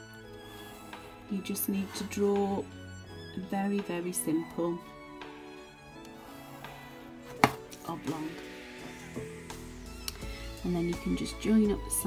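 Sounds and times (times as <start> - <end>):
soft background music: 0.0 - 12.0
plastic lid knocking: 7.4 - 7.6.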